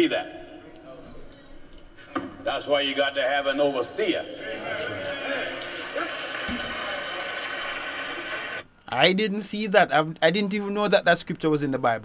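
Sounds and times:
murmur of voices: 3.8s - 8.6s.

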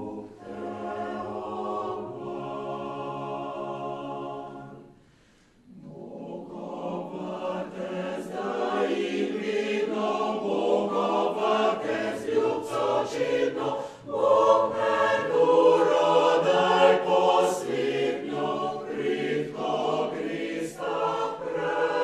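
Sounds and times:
mixed choir singing: 0.0s - 5.0s, 5.6s - 22.0s.

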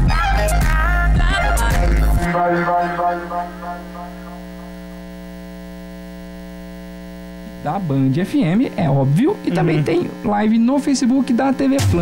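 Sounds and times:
electrical mains hum: 0.2s - 12.0s.

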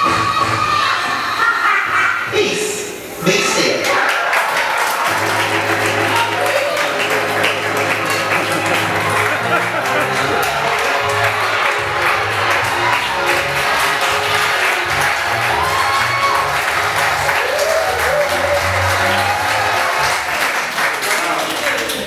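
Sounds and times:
audience applauding and cheering: 3.7s - 22.0s
loud music with heavy bass: 5.1s - 20.0s.

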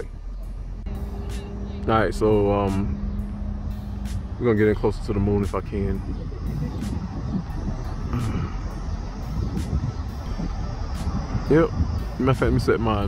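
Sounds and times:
low outdoor rumble: 0.0s - 13.0s.

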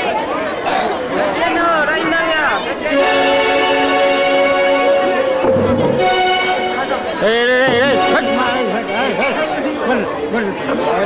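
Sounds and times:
chatter: 0.0s - 11.0s.

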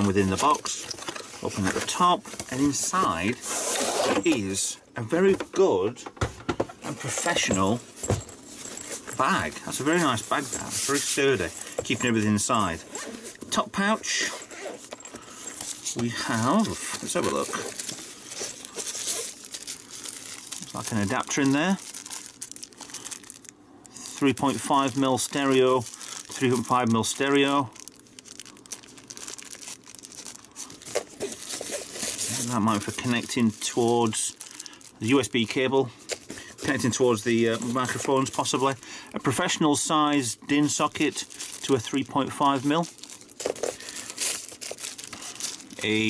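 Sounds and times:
plastic wrapping crinkling: 0.0s - 4.5s, 6.8s - 46.0s.

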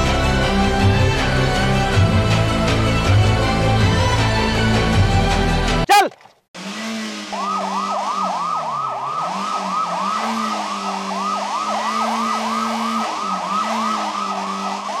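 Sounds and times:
low engine drone: 0.0s - 5.8s, 6.6s - 15.0s
siren yelping: 7.2s - 15.0s.

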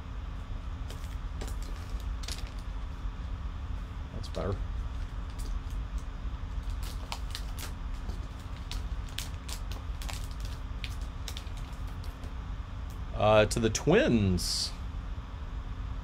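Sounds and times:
steady low hum: 0.0s - 16.0s
foil wrapper tearing and crinkling: 0.9s - 2.7s, 4.9s - 12.3s.

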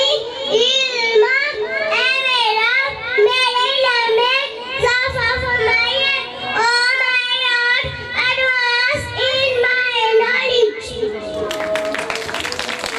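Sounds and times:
child chanting into a microphone: 0.0s - 11.5s.

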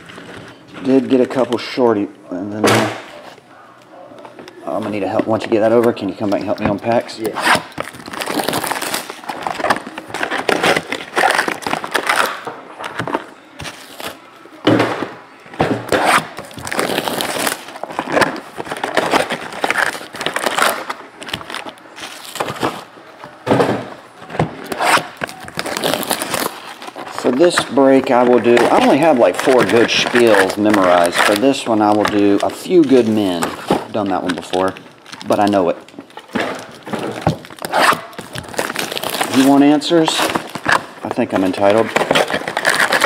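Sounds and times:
shrink wrap crinkling and tearing: 4.7s - 14.2s, 16.1s - 22.9s, 24.6s - 43.0s.

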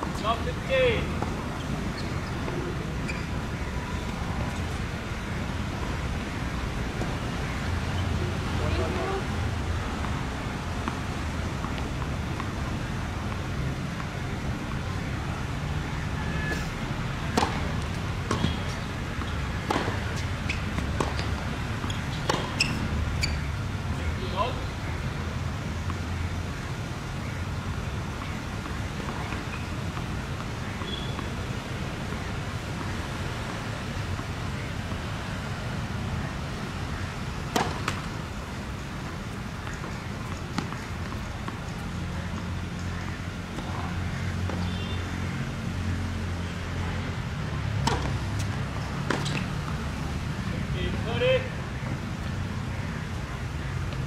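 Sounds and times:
tennis ball impacts: 16.5s - 23.3s, 37.2s - 42.9s, 47.8s - 49.8s.

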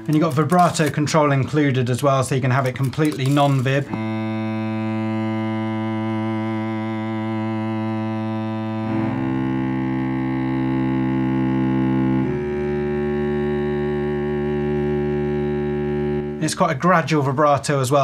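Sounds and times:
cello bowing sustained notes: 0.0s - 1.3s, 2.6s - 17.6s.

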